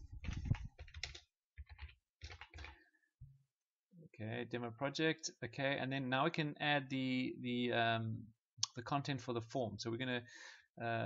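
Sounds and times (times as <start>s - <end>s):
typing on computer keyboard: 0.2s - 2.8s.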